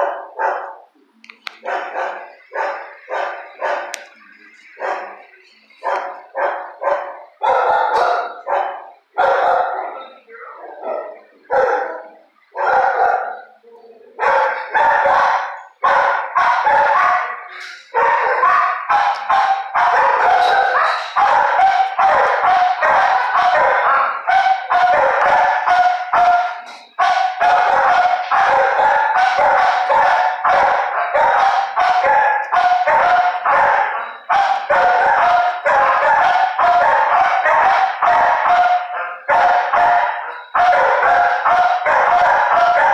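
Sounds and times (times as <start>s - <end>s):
dogs barking: 0.0s - 42.9s.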